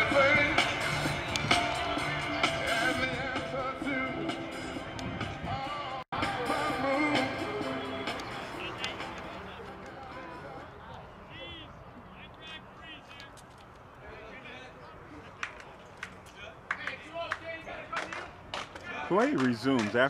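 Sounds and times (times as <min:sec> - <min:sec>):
background music: 0:00.0 - 0:10.6
distant voices and chatter: 0:07.4 - 0:20.0
sharp knocks and claps: 0:15.4 - 0:20.0.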